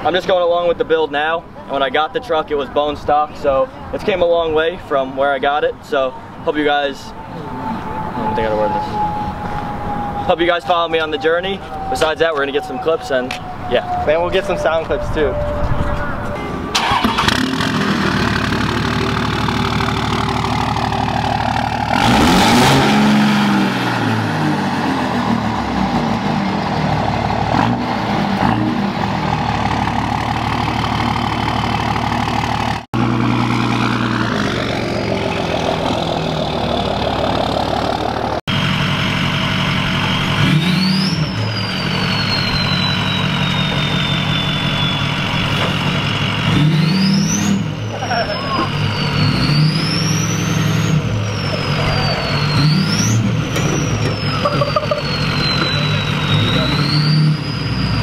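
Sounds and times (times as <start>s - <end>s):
diesel pickup engine revving: 6.3s - 58.0s
turbo whistle: 7.3s - 16.3s, 40.0s - 45.5s, 46.8s - 58.0s.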